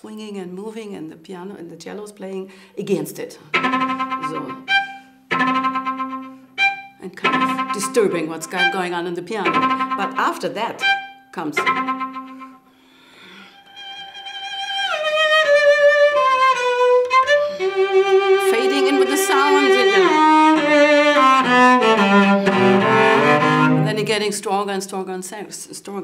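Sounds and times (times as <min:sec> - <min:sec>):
bowed cello melody: 0:03.5 - 0:24.3.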